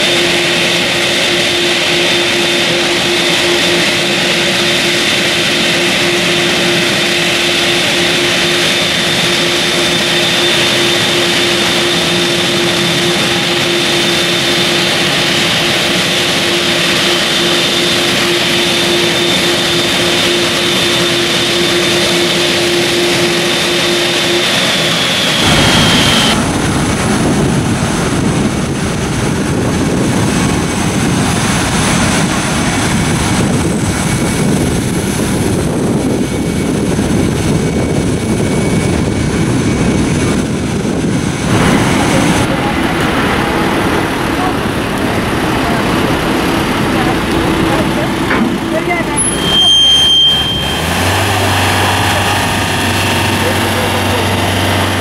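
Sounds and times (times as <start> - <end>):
jet engines running: 0.0 - 55.0.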